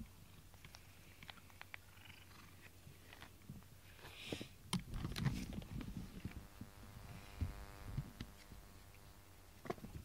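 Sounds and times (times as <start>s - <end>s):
cat purring: 1.8s - 2.7s.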